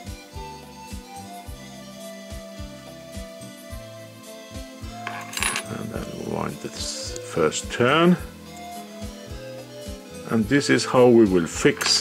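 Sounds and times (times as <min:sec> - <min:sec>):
background music with low beat: 0:00.0 - 0:12.0
light metallic clinking: 0:05.0 - 0:05.8.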